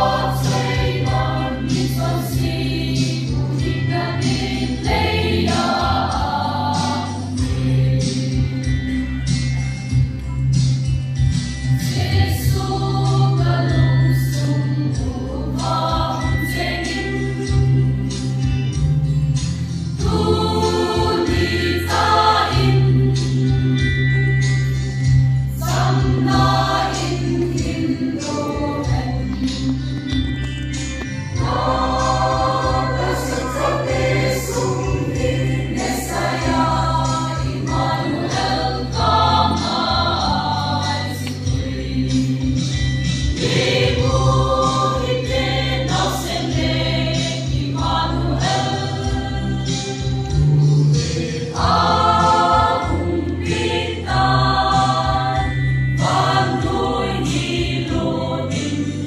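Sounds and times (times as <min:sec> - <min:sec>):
mixed choir singing: 0:00.0 - 0:08.8, 0:11.7 - 0:18.2, 0:19.9 - 0:24.4, 0:25.4 - 0:29.8, 0:31.3 - 0:59.0.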